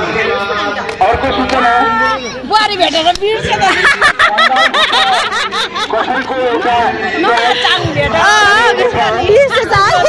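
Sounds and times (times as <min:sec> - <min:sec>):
people chatting: 0:00.0 - 0:10.0.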